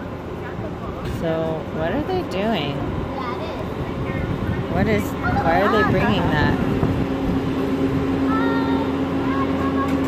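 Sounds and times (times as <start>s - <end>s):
loader engine humming: 0.0s - 10.0s.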